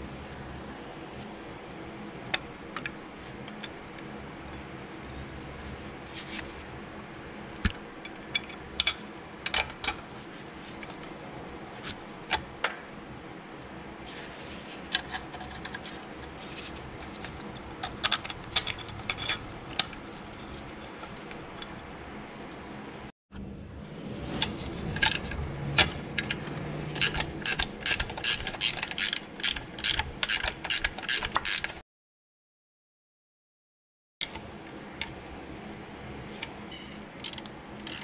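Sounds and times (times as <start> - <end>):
ratchet wrench clicking: 27.0 - 31.8, 37.2 - 38.0.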